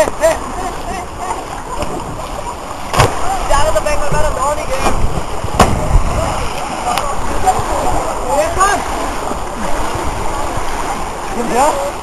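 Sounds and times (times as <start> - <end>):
outdoor pool noise: 0.0 - 12.0
voices calling out: 0.0 - 12.0
splash into pool water: 1.7 - 3.6, 4.7 - 7.0.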